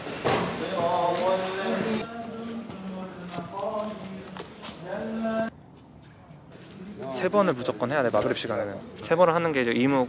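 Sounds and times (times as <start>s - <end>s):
man chanting: 0.5s - 5.5s.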